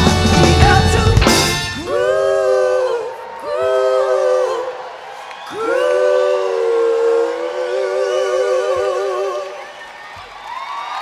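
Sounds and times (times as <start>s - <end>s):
voices singing close harmony: 0.0s - 9.9s.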